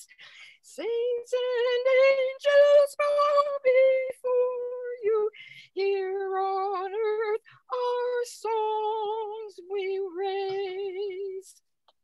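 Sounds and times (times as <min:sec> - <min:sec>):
woman singing a hymn: 0:00.7 - 0:11.6.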